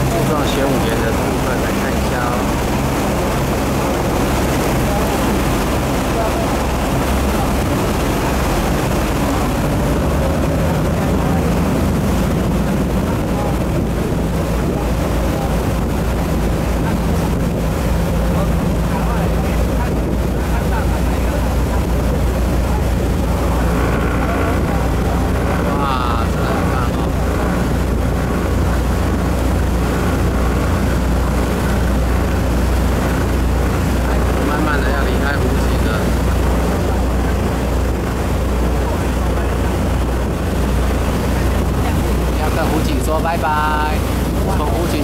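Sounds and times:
boat engine droning: 0.0s - 45.0s
wind and water rushing: 0.0s - 45.0s.

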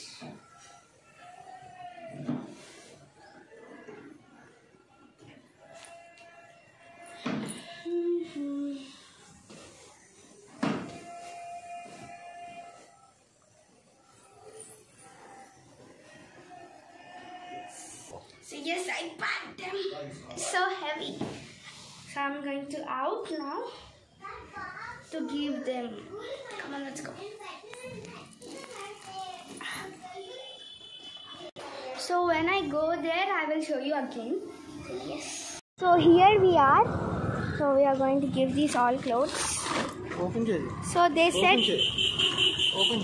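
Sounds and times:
children talking: 22.1s - 36.9s, 37.6s - 41.9s.

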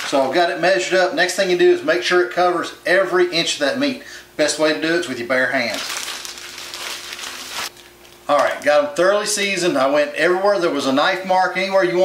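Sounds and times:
plastic bag crinkling: 5.6s - 8.8s.

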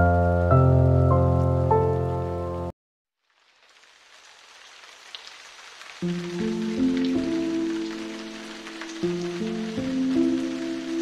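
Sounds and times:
soft sustained chords music: 6.1s - 11.0s.

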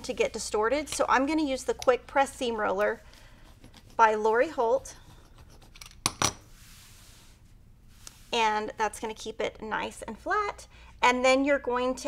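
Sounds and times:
soft faint rubbing: 2.4s - 9.0s.

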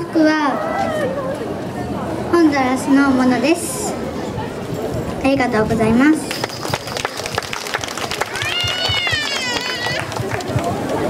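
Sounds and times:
hand clapping: 6.3s - 11.0s.

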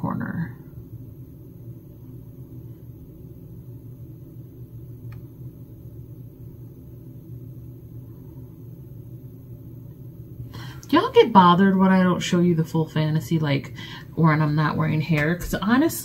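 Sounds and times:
steady low hum: 0.0s - 16.0s
faint click: 5.0s - 5.3s.

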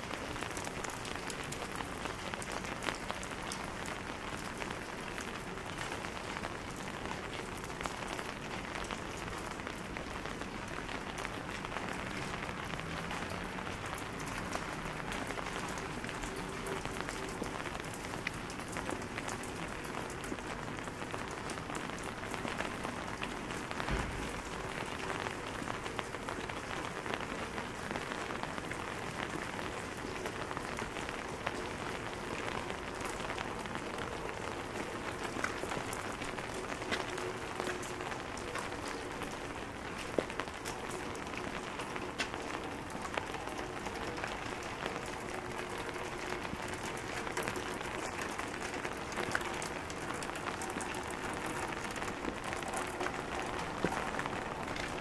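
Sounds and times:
rain on pavement: 0.0s - 55.0s
low thump: 23.8s - 24.6s.

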